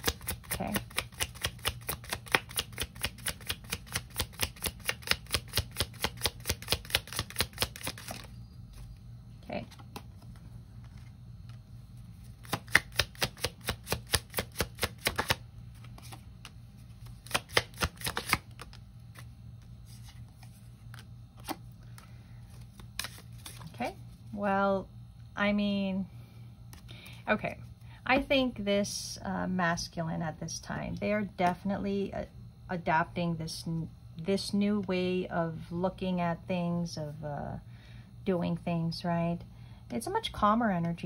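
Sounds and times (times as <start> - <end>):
cards being shuffled: 0.0 - 8.9, 9.6 - 11.6, 12.2 - 24.0.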